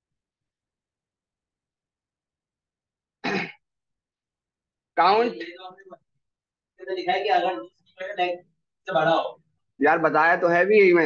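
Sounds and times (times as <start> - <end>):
man clearing throat: 3.2 - 3.7.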